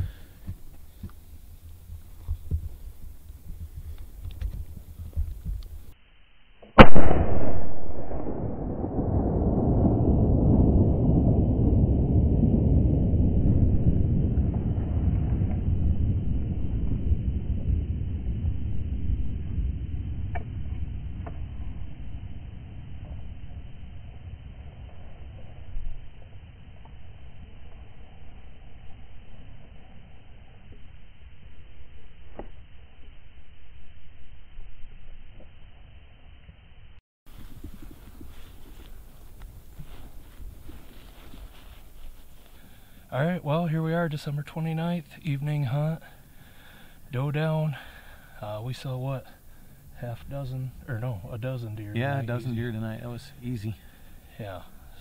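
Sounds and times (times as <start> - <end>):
low rumbling noise: 0.0 - 55.0
rifle shot with echo: 6.8 - 9.7.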